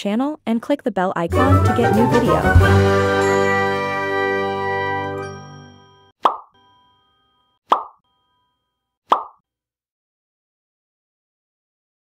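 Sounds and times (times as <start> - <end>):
outro music: 1.3 - 5.9
plop sound effects: 6.2 - 6.6, 7.7 - 8.0, 9.1 - 9.4.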